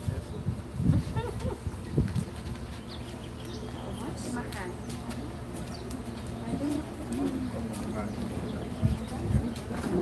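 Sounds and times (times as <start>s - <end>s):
voices murmuring: 0.0s - 10.0s.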